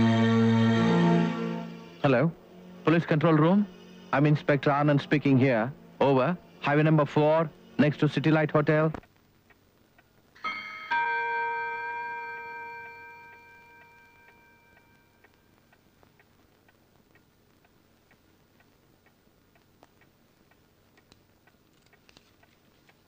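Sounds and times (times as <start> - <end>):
clock ticking: 4.2 - 23.0
clock chime ringing: 10.4 - 15.3.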